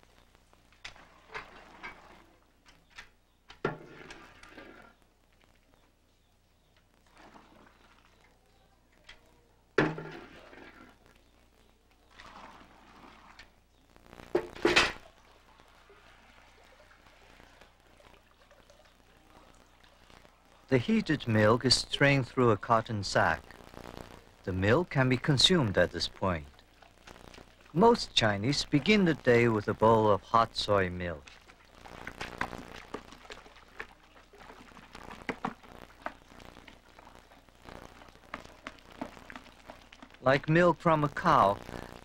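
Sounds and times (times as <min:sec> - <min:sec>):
liquid pouring and sloshing: 0:00.8 - 0:05.0, 0:07.0 - 0:08.4, 0:09.8 - 0:11.1, 0:12.0 - 0:13.6, 0:14.4 - 0:20.4, 0:31.1 - 0:40.5.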